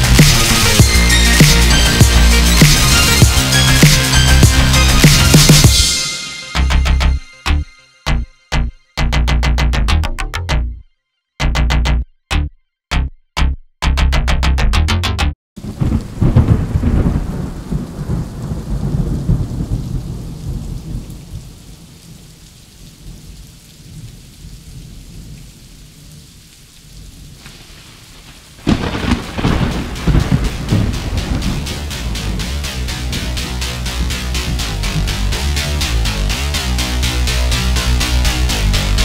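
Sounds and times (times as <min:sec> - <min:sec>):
steady rain: 0:00.0 - 0:05.8, 0:15.6 - 0:39.0
electronic music with pulsing beat: 0:00.0 - 0:15.4, 0:29.4 - 0:39.0
thunder rumble: 0:15.6 - 0:22.4, 0:26.9 - 0:35.2.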